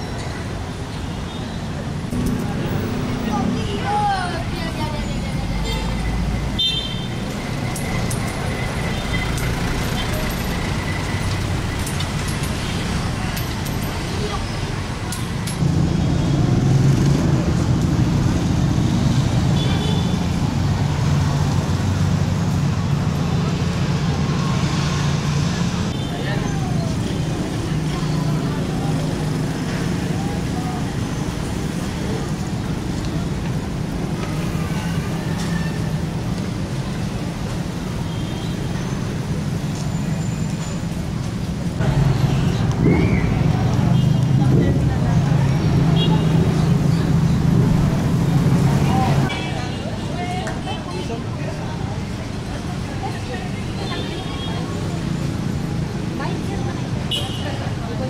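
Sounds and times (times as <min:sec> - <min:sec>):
motorcycles and cars passing: 0:00.4 - 0:58.0
passers-by talking: 0:01.6 - 0:15.7, 0:16.4 - 0:38.0, 0:40.6 - 0:58.0.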